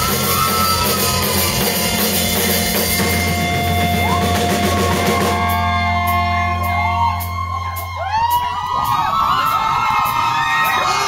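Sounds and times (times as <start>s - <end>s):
band holding low note: 0.0s - 9.9s
crowd whooping and yelling: 0.0s - 11.0s.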